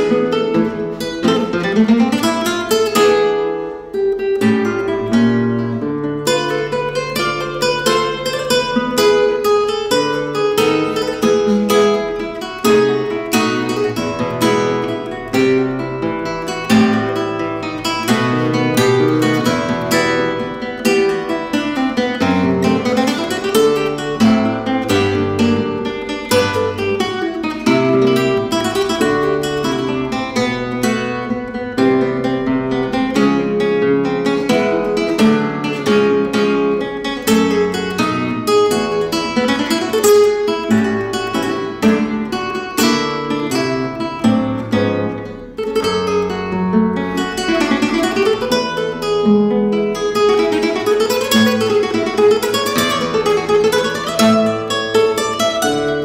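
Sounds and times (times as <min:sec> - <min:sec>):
classical guitar playing: 0:00.0 - 0:56.0.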